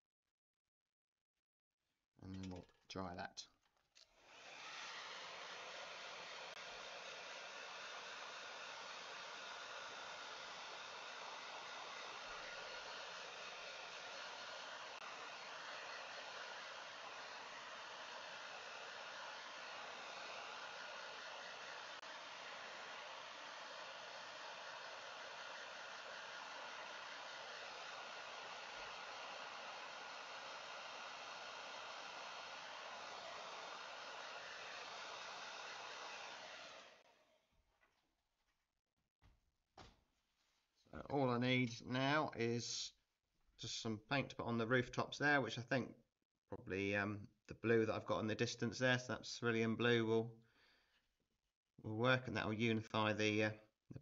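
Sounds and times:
hair dryer blowing: 4.0s - 37.5s.

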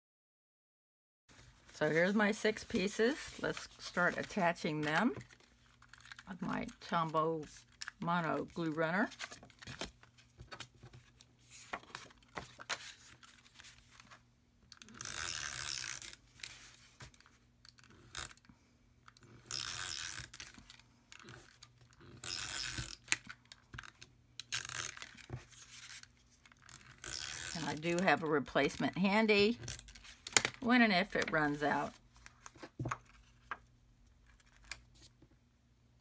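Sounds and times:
paper rustling: 1.3s - 6.3s, 8.7s - 14.2s.

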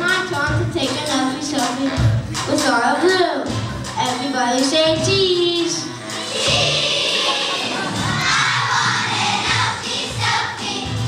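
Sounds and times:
backing track: 0.0s - 11.0s
children's choir singing: 6.1s - 11.0s
children shouting together: 6.2s - 9.4s.

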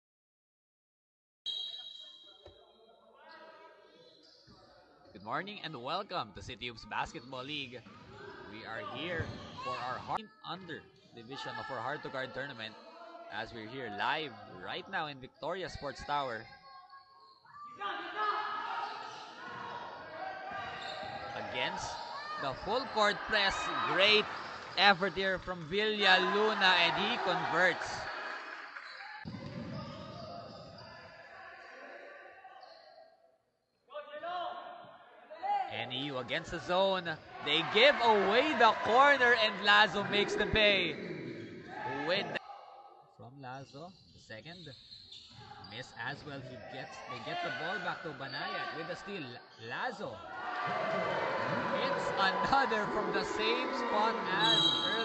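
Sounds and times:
indoor basketball game: 1.5s - 55.0s
basketball bouncing on court: 29.3s - 30.9s.

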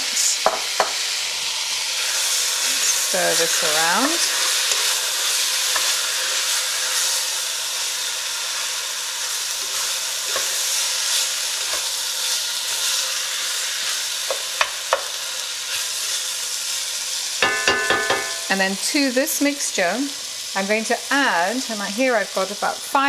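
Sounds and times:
vegetables sizzling in a pot: 0.0s - 23.0s
spatula knocking against pot: 17.4s - 18.5s.

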